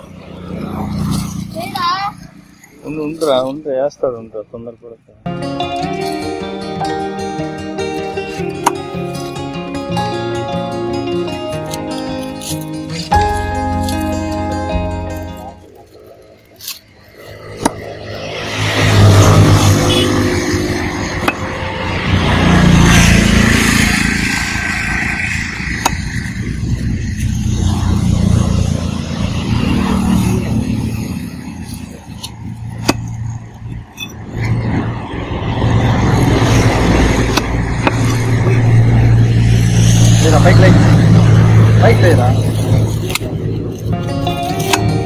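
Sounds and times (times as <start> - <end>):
vehicle engines humming: 0.0 - 45.0
cleaver striking chopping block: 8.6 - 8.9, 25.8 - 26.1, 32.2 - 33.1, 37.3 - 38.2.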